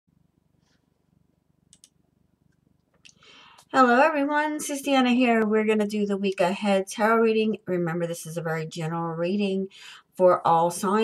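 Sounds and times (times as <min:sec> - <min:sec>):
faint pulsing low hum: 0:00.1 - 0:11.0
soft clicks: 0:01.7 - 0:03.7.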